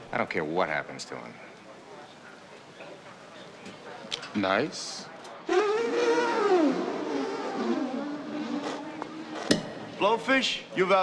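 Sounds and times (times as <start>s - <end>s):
man blowing buzzing lip honk: 5.5s - 6.9s.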